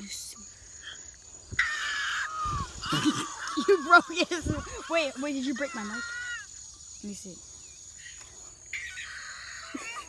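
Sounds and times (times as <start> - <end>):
insects droning: 0.0 - 10.0.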